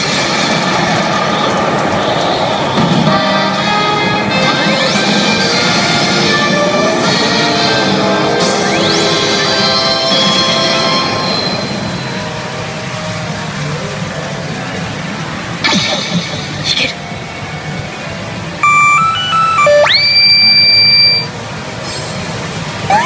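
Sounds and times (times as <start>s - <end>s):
pachinko machine music: 3.1s - 12.7s, 14.9s - 23.0s
rising electronic beeps: 8.4s - 10.9s, 18.6s - 21.4s, 22.8s - 23.0s
long high electronic tone: 18.6s - 21.4s.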